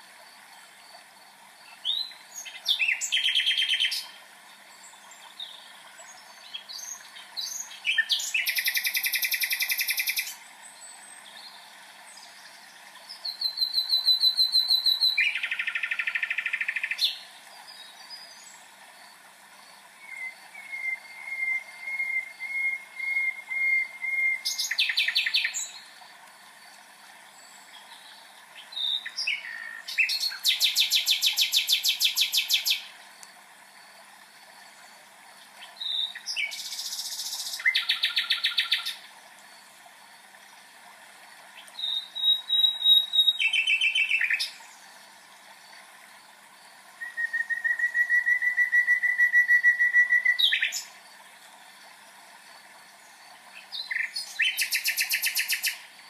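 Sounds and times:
faint hiss: 0.0 - 56.0
songbird trilling and whistling: 20.0 - 25.7, 41.8 - 44.5, 47.0 - 50.8.

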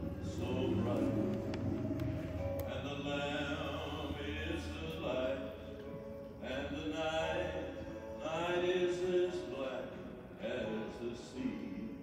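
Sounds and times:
person singing long held notes: 0.0 - 12.0.

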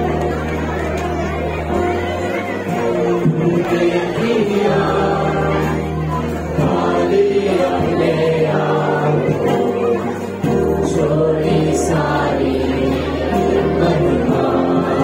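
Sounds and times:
voices singing worship song: 2.0 - 15.0.

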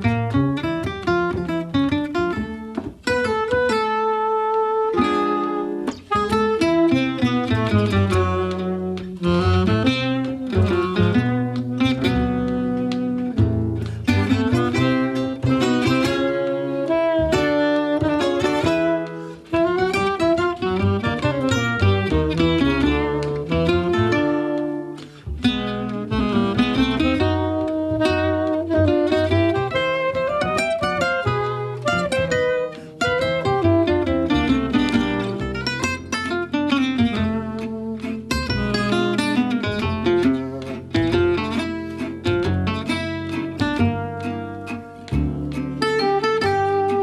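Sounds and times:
acoustic guitars: 0.0 - 47.0
upright double bass: 0.0 - 47.0
tenor saxophone: 3.2 - 35.6, 45.8 - 47.0.

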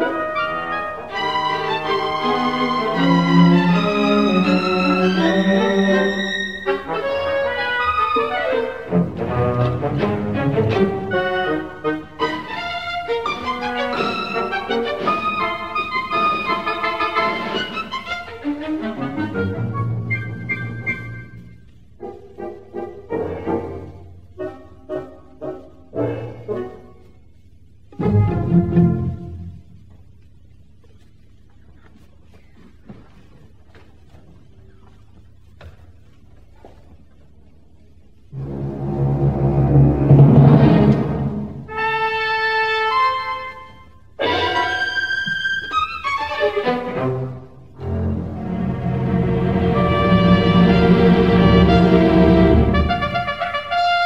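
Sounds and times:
orchestra playing modern classical music: 0.0 - 27.0, 27.8 - 29.8, 38.2 - 54.0.

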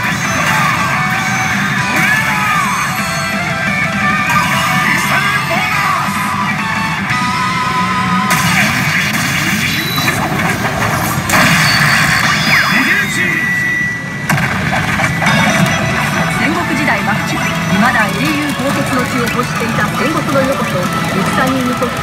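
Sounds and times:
pachinko machine music and effects: 0.0 - 22.0
recorded voice: 16.3 - 22.0.

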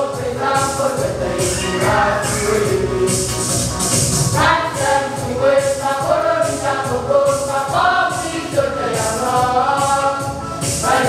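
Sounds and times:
women singing a hymn: 0.0 - 3.3, 4.4 - 11.0.

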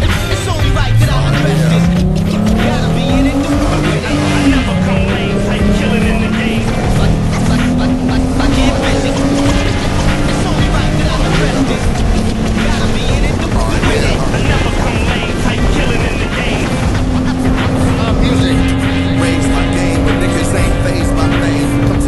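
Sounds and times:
car engine accelerating: 0.0 - 22.0.

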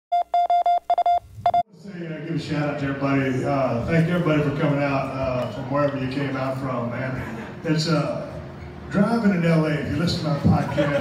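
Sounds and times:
crowd chatter: 1.7 - 11.0.

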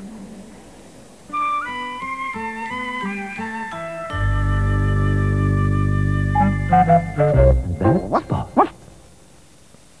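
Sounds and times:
faint tape hiss: 0.0 - 10.0
cartoon puppy yapping: 7.9 - 8.8.

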